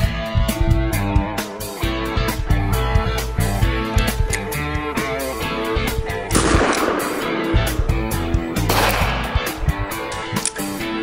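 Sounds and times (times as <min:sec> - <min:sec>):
guitar music: 0:00.0 - 0:11.0
blank revolver bangs: 0:06.3 - 0:09.7.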